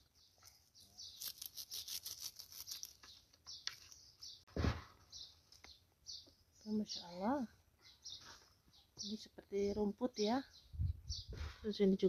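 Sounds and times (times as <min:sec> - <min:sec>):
leaves and stems rustling: 0:00.4 - 0:04.2.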